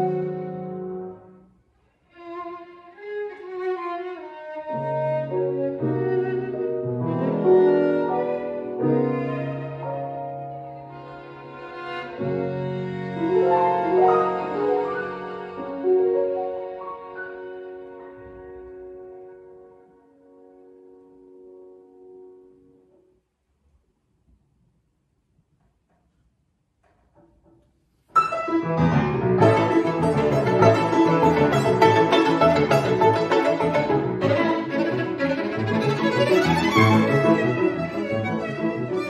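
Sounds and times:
piano chords: 0.0 - 1.5, 3.6 - 23.1, 28.1 - 39.0
violin melody: 0.0 - 22.2, 28.2 - 39.0.

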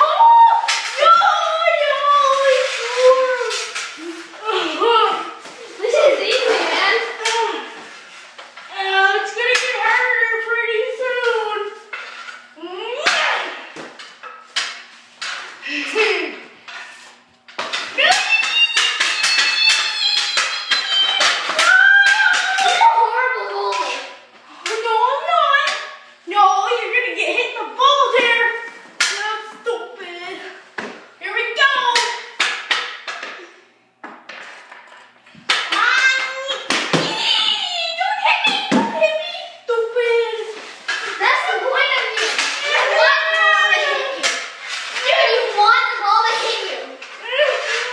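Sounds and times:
children shouting: 0.0 - 3.2, 18.0 - 24.2, 41.2 - 47.9
hockey sticks clacking on puck: 0.1 - 1.2, 2.2 - 4.3, 5.9 - 8.7, 9.3 - 10.1, 13.0 - 15.5, 16.7 - 24.9, 25.6 - 26.0, 29.0 - 29.4, 31.6 - 37.4, 40.4 - 47.9.

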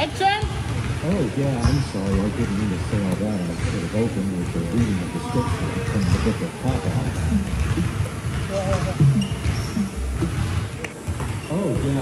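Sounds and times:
people talking: 0.0 - 10.9, 11.5 - 12.0
basketball bouncing on wooden floor: 0.2 - 12.0.

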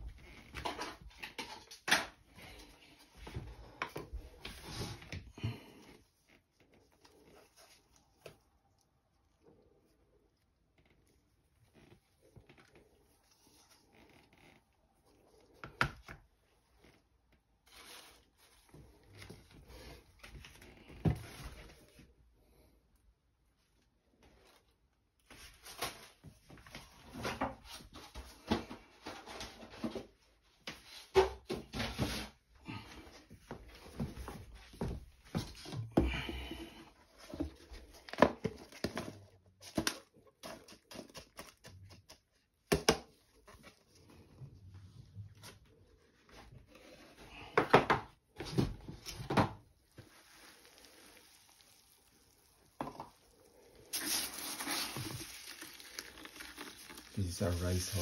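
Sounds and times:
potting mix rustling: 2.3 - 14.0, 14.7 - 22.1, 31.8 - 47.6, 48.2 - 58.0
rice husks being scooped: 49.9 - 58.0.

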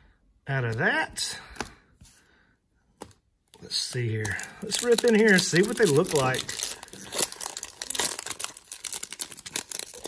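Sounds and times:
foil wrapper tearing and crinkling: 4.2 - 10.0.

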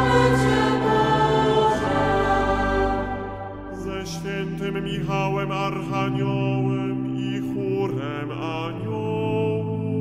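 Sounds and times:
choir chanting a prayer: 0.0 - 9.4.

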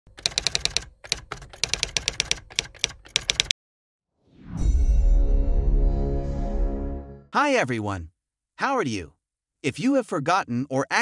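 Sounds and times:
rapid keyboard typing clicks: 0.1 - 3.5.

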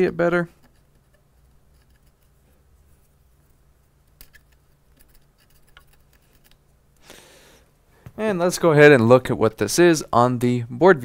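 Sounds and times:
low steady hum: 0.0 - 11.0
cotton swab scrubbing: 0.6 - 6.8.

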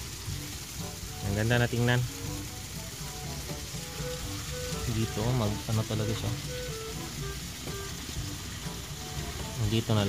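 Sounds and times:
water splashing into pond: 0.0 - 10.0.

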